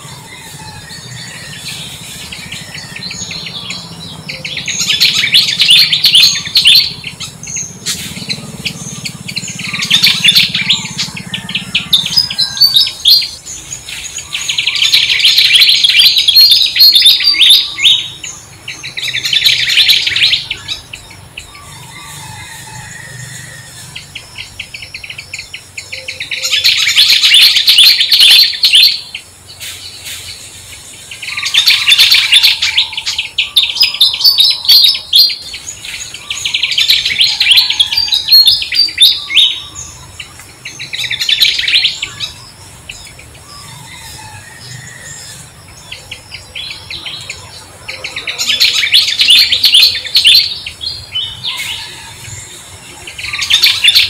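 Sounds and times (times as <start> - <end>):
songbirds twittering: 0.0 - 54.0.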